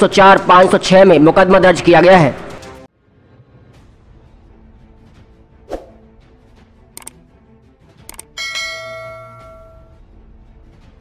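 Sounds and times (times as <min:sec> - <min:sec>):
quick clicks: 0:07.0 - 0:07.2, 0:08.0 - 0:08.3
notification bell ding: 0:08.4 - 0:10.0.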